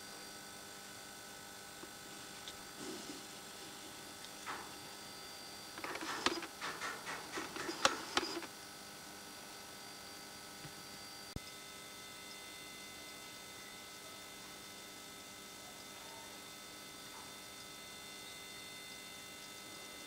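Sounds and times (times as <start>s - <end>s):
battery charger hum: 0.0s - 20.0s
clicks and rattles: 5.8s - 8.5s.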